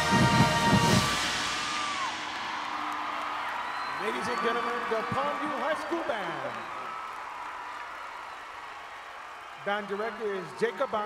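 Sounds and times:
marching band brass and drums: 0:00.0 - 0:04.0
crowd cheering and applauding: 0:00.0 - 0:11.0.

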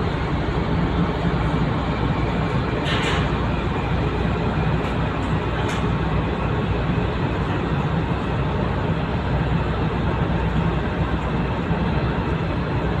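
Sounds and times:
low rumbling noise: 0:00.0 - 0:13.0.

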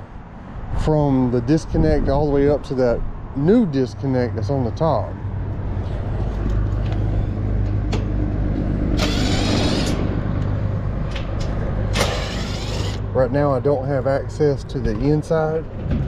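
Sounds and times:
steady low rumble: 0:00.0 - 0:16.0
cordless driver running: 0:09.0 - 0:10.0, 0:11.9 - 0:13.0.

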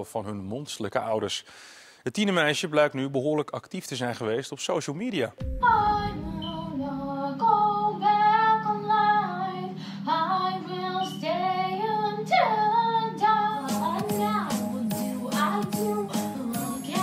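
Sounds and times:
girl singing slow song: 0:05.4 - 0:17.0.

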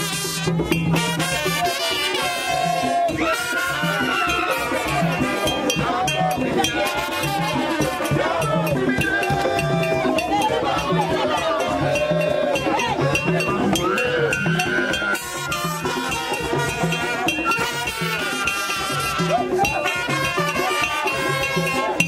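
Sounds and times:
low drum beat: 0:00.8 - 0:20.7
voices singing: 0:01.0 - 0:22.0.

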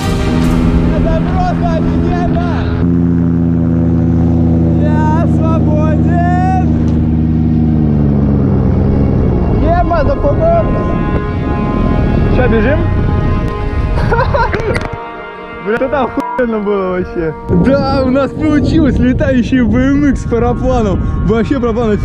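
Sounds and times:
paramotor engine droning: 0:00.0 - 0:22.0.

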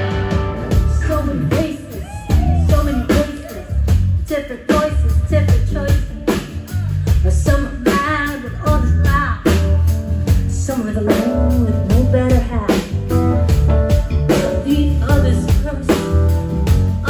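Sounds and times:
electric guitar: 0:00.0 - 0:04.1
woman singing lead: 0:00.0 - 0:13.5, 0:14.3 - 0:17.0
drum kit steady beat: 0:00.0 - 0:17.0.

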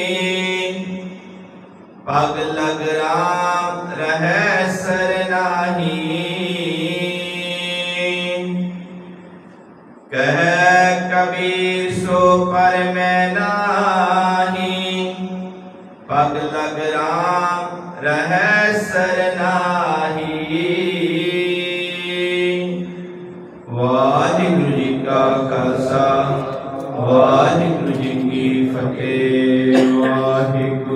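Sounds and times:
man chanting melodically: 0:00.0 - 0:09.4, 0:10.1 - 0:30.9.

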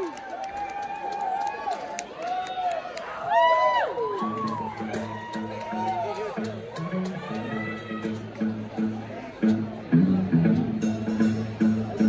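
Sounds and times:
scattered claps: 0:00.0 - 0:03.1, 0:04.0 - 0:08.4
crowd woo: 0:00.0 - 0:08.2
low crowd chatter: 0:00.0 - 0:12.0.

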